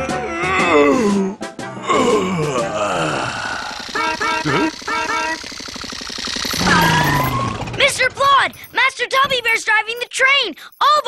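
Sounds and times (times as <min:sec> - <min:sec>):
cartoon character yawning: 0:00.0 - 0:03.8
background music: 0:00.0 - 0:05.5
falling vocal sound: 0:00.1 - 0:04.7
short repeated notes: 0:03.6 - 0:07.8.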